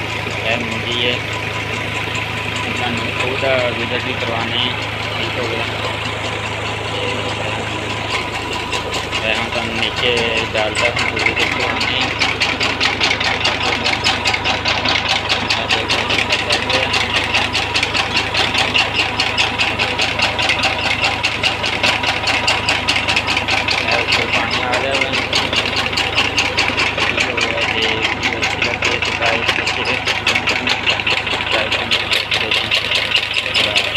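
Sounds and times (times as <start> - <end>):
diesel engine running: 0.0 - 33.9.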